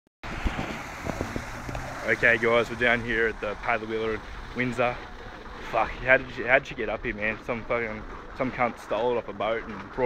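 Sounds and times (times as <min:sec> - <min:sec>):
water rushing and splashing: 0:00.2 - 0:10.0
wind buffeting microphone: 0:00.2 - 0:10.0.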